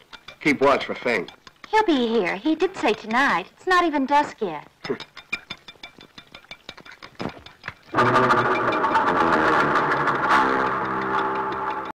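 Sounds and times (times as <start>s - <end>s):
chopsticks beating eggs in bowl: 0.0s - 8.0s.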